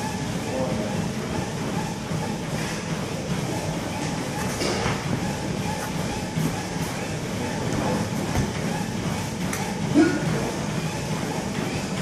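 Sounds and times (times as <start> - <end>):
large room rumble: 0.0 - 12.0.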